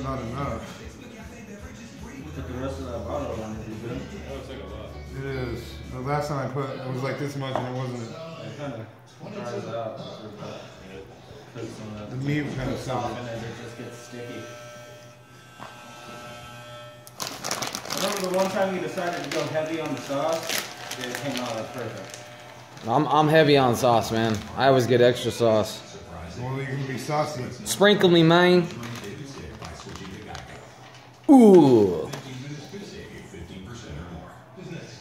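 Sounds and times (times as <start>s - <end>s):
faint background talk: 0.0s - 16.7s.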